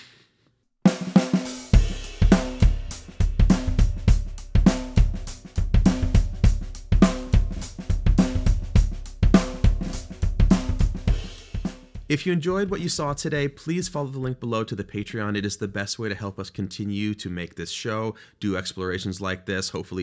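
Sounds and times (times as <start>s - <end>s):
bass drum thumping: 0.9s - 13.3s
drum kit groove: 0.9s - 15.2s.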